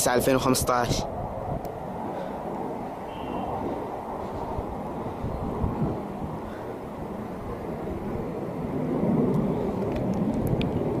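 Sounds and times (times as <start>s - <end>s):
low outdoor rumble: 0.0s - 11.0s
faint clicks: 9.3s - 10.7s.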